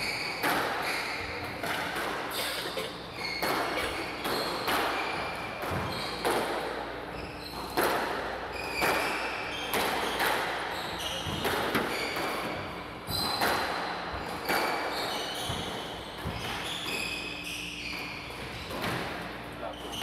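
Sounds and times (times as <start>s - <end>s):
shoes squeaking on wooden floor: 0.0s - 6.2s, 10.7s - 13.4s
squash ball cracking off rackets: 0.3s - 6.8s, 7.5s - 16.6s.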